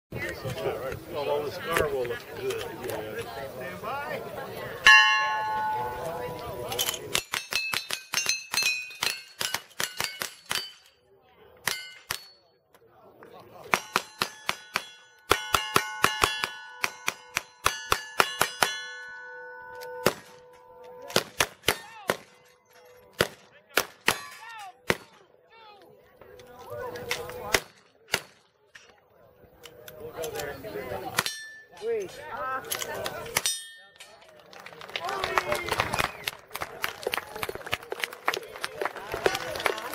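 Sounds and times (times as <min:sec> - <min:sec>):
steel plate ringing clang: 0:04.9 - 0:10.8, 0:13.9 - 0:21.1, 0:31.2 - 0:31.8
gunshots: 0:21.1 - 0:22.4, 0:23.1 - 0:25.2.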